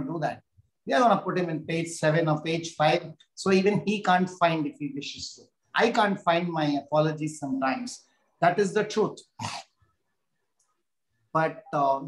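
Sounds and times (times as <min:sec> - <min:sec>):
man speaking: 0:00.0 - 0:09.8, 0:11.3 - 0:12.0.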